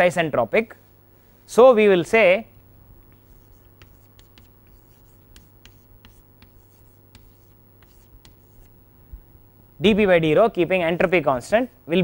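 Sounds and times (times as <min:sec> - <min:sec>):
chalk tapping and scratching: 0:03.0 - 0:08.7.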